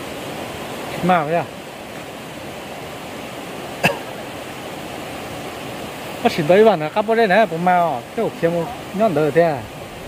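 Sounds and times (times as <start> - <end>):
stream running over stones: 0.0 - 10.0
cough-like grunt: 3.8 - 4.2.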